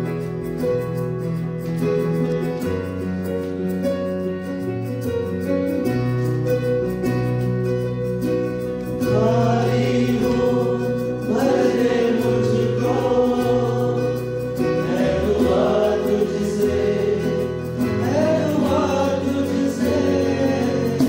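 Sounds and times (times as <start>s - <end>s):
instrumental accompaniment: 0.0s - 21.0s
choir singing a hymn: 8.8s - 21.0s.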